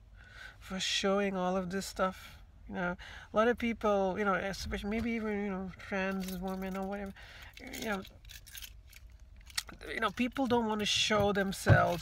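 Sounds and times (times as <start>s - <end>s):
person speaking: 0.7s - 8.2s, 9.6s - 12.0s.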